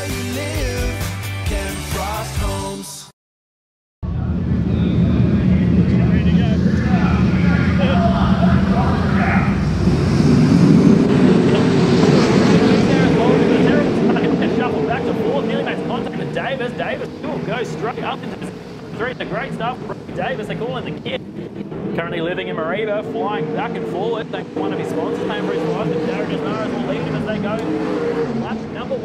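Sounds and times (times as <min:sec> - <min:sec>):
race car engines roaring: 0:04.0 - 0:29.0.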